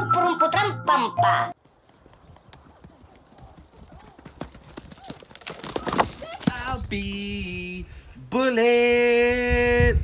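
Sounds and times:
horse hoofbeats on turf: 1.6s - 7.2s.

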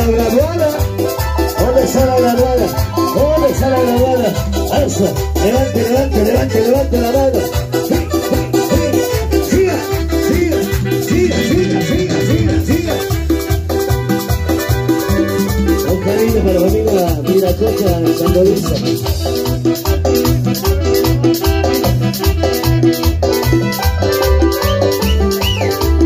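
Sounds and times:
bass and drum beat: 0.0s - 26.0s
electronic keyboard melody: 0.0s - 26.0s
shaker percussion: 0.0s - 26.0s.

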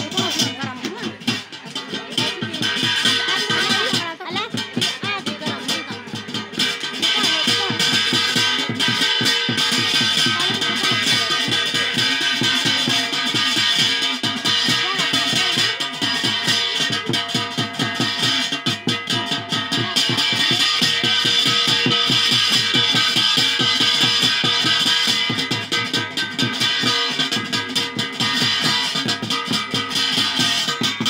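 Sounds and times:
fast driving drum beat: 0.0s - 31.0s.

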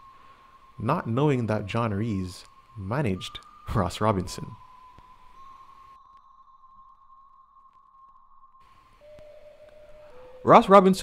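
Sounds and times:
faint electronic drone: 0.0s - 11.0s.

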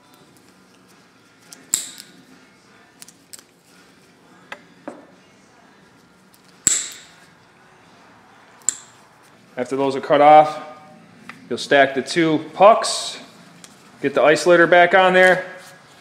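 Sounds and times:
side cutters snapping rubber: 1.5s - 2.1s, 6.6s - 7.2s.

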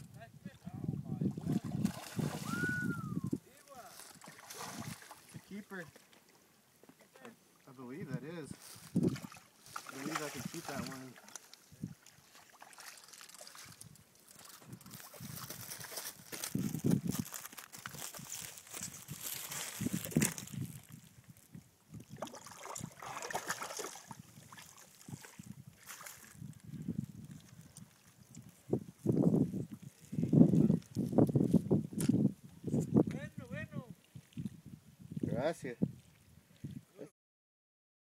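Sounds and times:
water splashing and sloshing: 1.3s - 2.8s, 3.7s - 7.6s, 8.6s - 21.4s, 22.0s - 26.6s, 33.9s - 34.6s.

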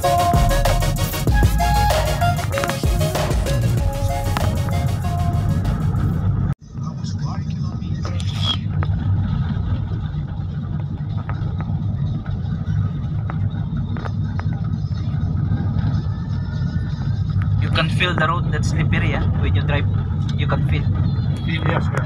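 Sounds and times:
background music: 0.0s - 6.5s
car engine and tyres rumbling: 0.0s - 22.0s.

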